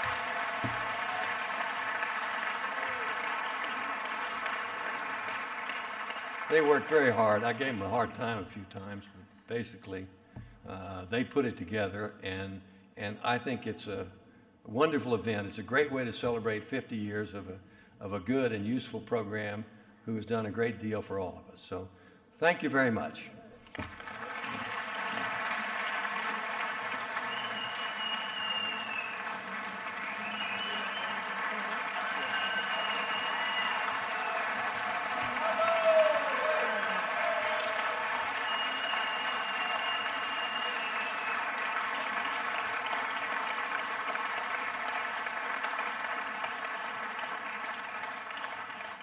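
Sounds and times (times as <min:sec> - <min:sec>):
audience applauding: 0:00.0 - 0:07.9, 0:23.6 - 0:49.0.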